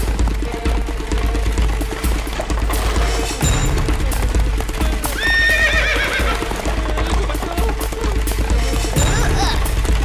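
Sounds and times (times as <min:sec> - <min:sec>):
background music: 0:00.0 - 0:10.0
cartoon hooves clip-clopping: 0:00.0 - 0:10.0
horse whinny: 0:05.1 - 0:06.8.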